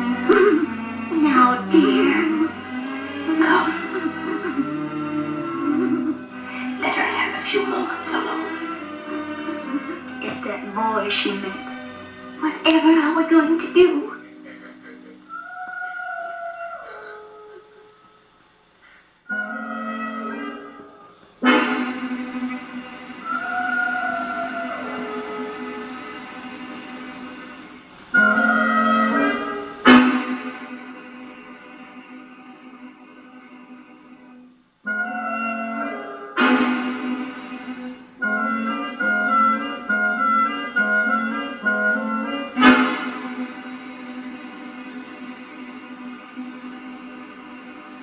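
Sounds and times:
orchestral music: 0.0s - 15.4s, 19.3s - 48.0s
unclear voices: 0.0s - 30.2s.

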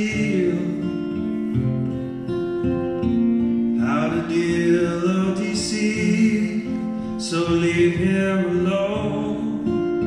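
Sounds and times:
acoustic guitar chords: 0.0s - 10.0s
person singing: 3.8s - 10.0s.

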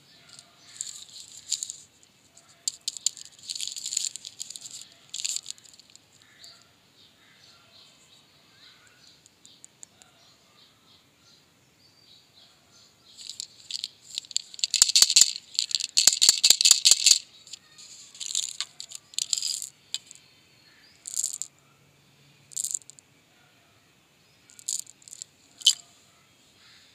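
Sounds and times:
candy rattling in plastic tube: 0.3s - 1.8s, 2.6s - 5.9s, 13.2s - 20.2s, 21.0s - 21.5s, 22.5s - 22.9s, 24.6s - 25.8s.

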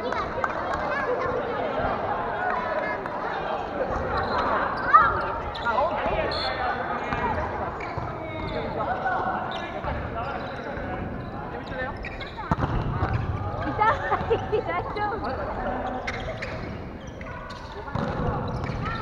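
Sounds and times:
players calling and talking: 0.0s - 19.0s
volleyball thuds: 12.4s - 13.2s.

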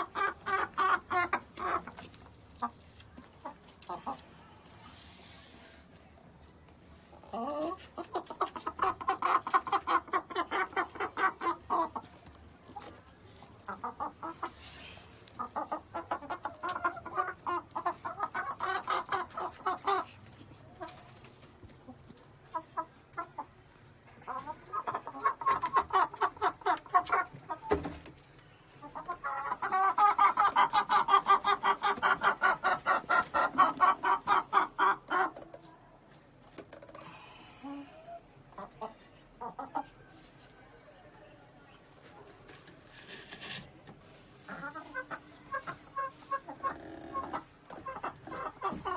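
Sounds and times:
hens clucking rapidly: 0.0s - 4.3s, 7.2s - 35.8s, 42.1s - 48.9s.

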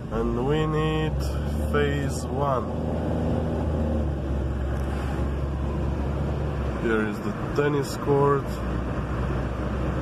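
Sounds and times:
car engine and tyre rumble: 0.0s - 10.0s.

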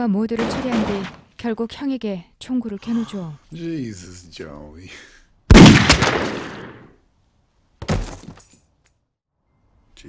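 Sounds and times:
gunshot echo: 5.5s - 6.9s.

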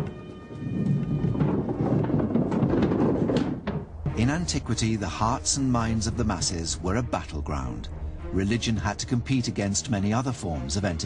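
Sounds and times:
iron balls rumbling in wooden box: 0.0s - 5.0s.

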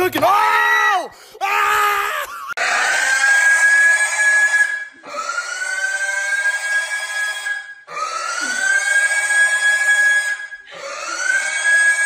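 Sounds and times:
pig squealing: 1.5s - 12.0s.

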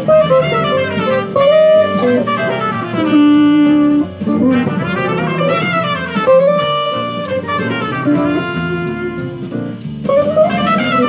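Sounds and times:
drum backing: 0.0s - 11.0s
electric guitar jazz line: 0.0s - 11.0s.

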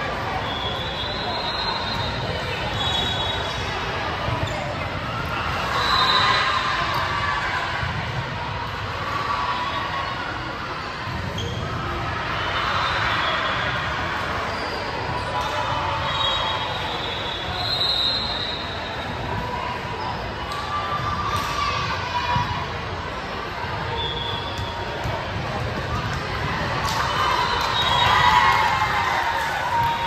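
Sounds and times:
voices in a gymnasium: 0.0s - 30.0s.

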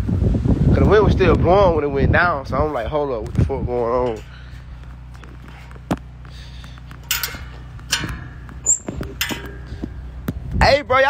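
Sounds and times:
steady low hum: 0.0s - 11.0s
metal gate scraping: 4.0s - 10.2s.

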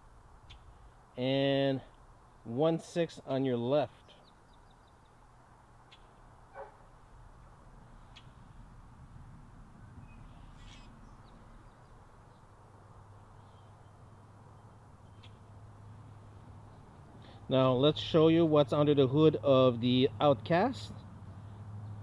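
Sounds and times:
faint bird calls: 7.9s - 8.6s, 9.8s - 12.5s, 13.2s - 15.5s.

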